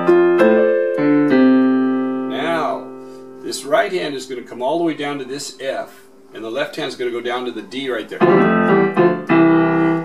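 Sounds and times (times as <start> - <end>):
electronic keyboard piano chords: 0.0 - 3.7, 8.2 - 10.0.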